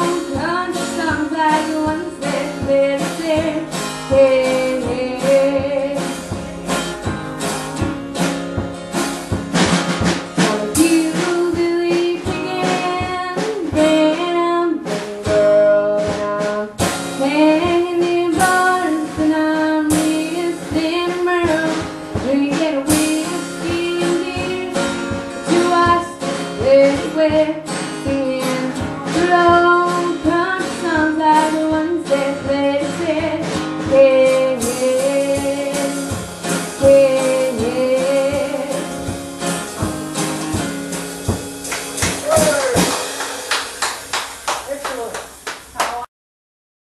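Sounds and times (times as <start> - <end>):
woman singing country song: 0.0 - 8.0, 10.2 - 40.8
strummed acoustic guitar: 0.0 - 44.5
drum kit beat: 0.0 - 46.1.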